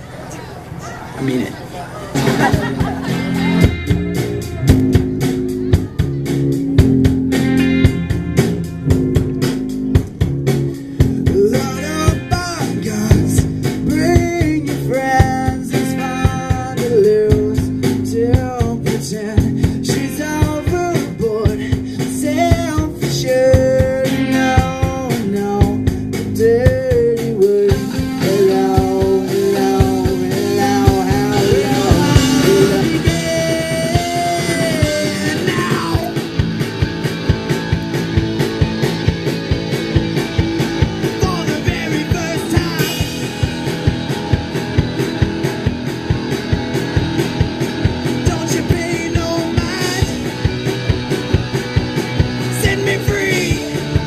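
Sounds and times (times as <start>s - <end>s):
bass guitar: 0.0s - 54.0s
drum kit: 2.1s - 54.0s
electric guitar: 2.1s - 54.0s
man singing lead vocal: 11.2s - 36.3s, 41.1s - 43.3s, 48.1s - 50.4s, 52.4s - 54.0s.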